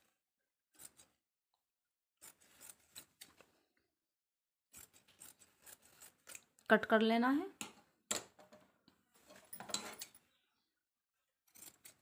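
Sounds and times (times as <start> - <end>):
shears snipping fabric: 2.2 - 3.4, 4.7 - 6.6.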